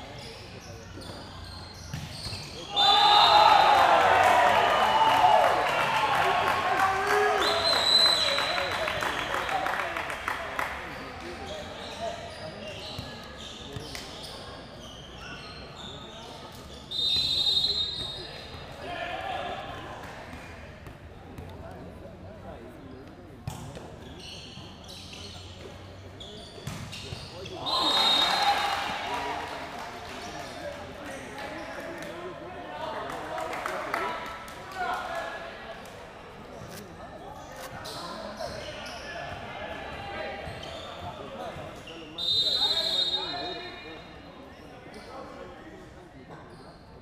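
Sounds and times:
crowd chatter in large hall: 0:00.0 - 0:47.0
crowd cheering: 0:02.7 - 0:10.8, 0:27.6 - 0:30.3.

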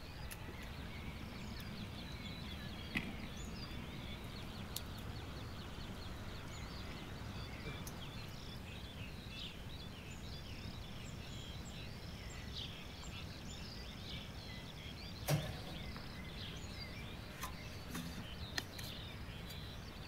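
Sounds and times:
low outdoor rumble: 0:00.0 - 0:20.0
small birds chirping: 0:00.0 - 0:20.0.

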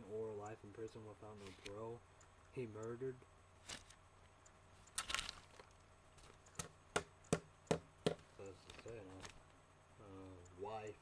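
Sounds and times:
man speaking: 0:00.0 - 0:03.3, 0:08.3 - 0:09.3, 0:10.0 - 0:11.0
sharp knocks: 0:06.5 - 0:08.3.

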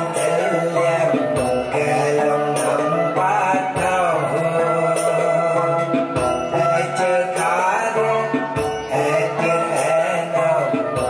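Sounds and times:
voices chanting a melody: 0:00.0 - 0:11.0.

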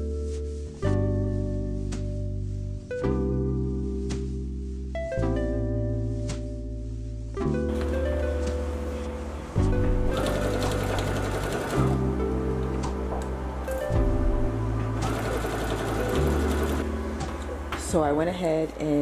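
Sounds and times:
background music with deep bass: 0:00.0 - 0:18.4
sewing machine stitching: 0:10.2 - 0:12.0, 0:15.0 - 0:16.8.

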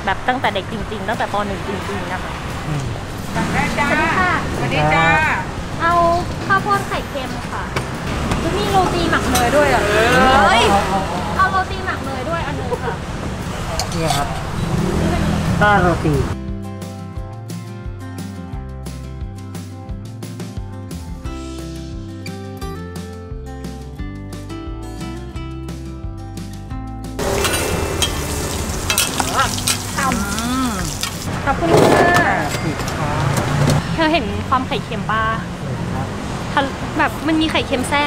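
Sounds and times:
people talking: 0:00.0 - 0:07.7, 0:08.4 - 0:13.0, 0:29.2 - 0:38.0
traffic rumble: 0:00.0 - 0:16.4, 0:27.2 - 0:38.0
vehicle passing: 0:00.0 - 0:16.4, 0:27.2 - 0:38.0.

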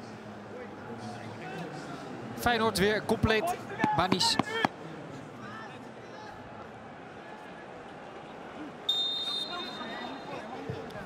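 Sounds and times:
referee's whistle blast: 0:08.9 - 0:10.4.

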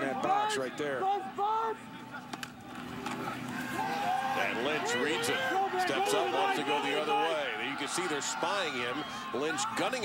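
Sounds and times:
stadium crowd noise: 0:00.0 - 0:10.0.

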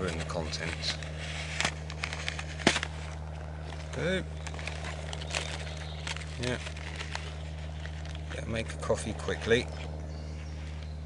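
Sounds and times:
cardboard carton crinkling: 0:00.0 - 0:10.0
steady low hum: 0:00.0 - 0:11.0.

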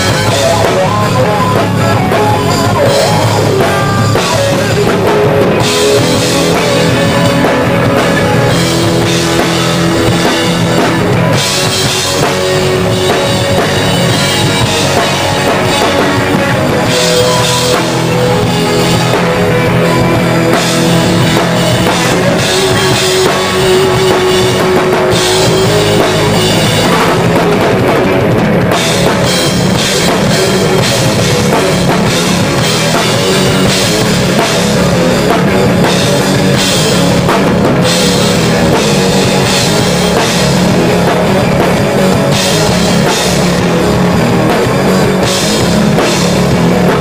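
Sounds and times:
electric guitar: 0:00.0 - 0:47.0
rock band playing live: 0:00.0 - 0:47.0.

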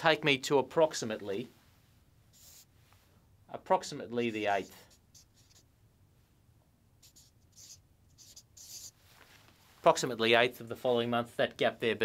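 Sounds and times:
marker scratching on paper: 0:02.3 - 0:02.7, 0:04.4 - 0:05.7, 0:07.0 - 0:09.0.

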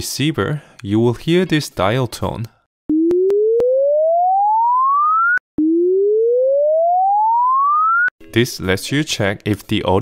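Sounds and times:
rising electronic test tone: 0:02.9 - 0:08.1.

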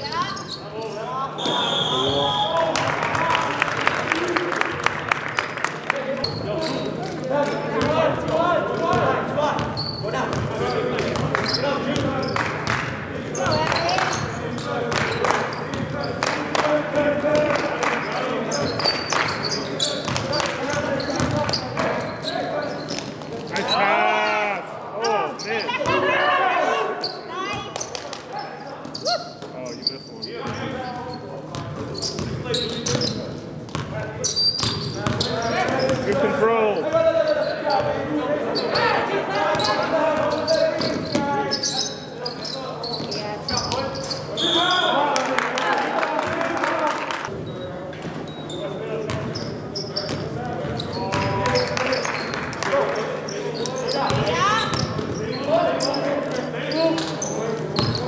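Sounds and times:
voices in a large hall: 0:00.0 - 0:58.0
basketball bouncing on court: 0:07.8 - 0:14.3, 0:20.0 - 0:22.0, 0:31.5 - 0:34.0, 0:34.6 - 0:36.3, 0:49.1 - 0:49.4, 0:50.0 - 0:51.7, 0:54.1 - 0:55.2, 0:57.8 - 0:58.0.

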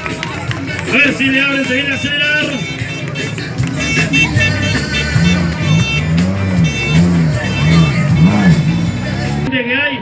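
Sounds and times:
loud music: 0:00.0 - 0:09.5
car engine revving: 0:00.8 - 0:09.5.

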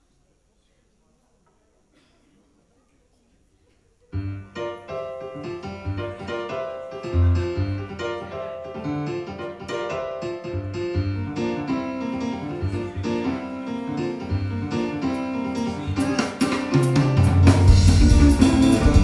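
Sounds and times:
electric keyboard playing chords: 0:04.2 - 0:19.0
drums and cymbals: 0:15.6 - 0:19.0
electric bass line: 0:17.4 - 0:19.0.

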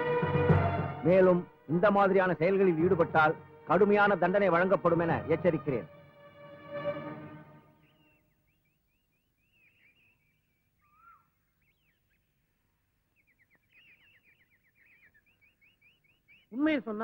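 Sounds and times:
faint birdsong chirps: 0:07.6 - 0:17.0.

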